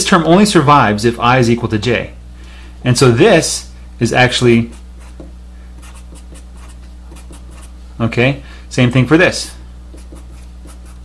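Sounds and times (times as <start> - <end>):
steady low hum: 0.0 - 11.0
marker writing on paper: 4.6 - 7.8, 9.9 - 11.0.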